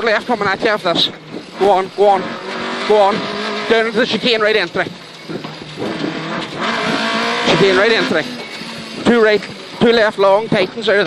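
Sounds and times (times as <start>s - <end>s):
rally car engine from inside cabin: 0.0s - 11.0s.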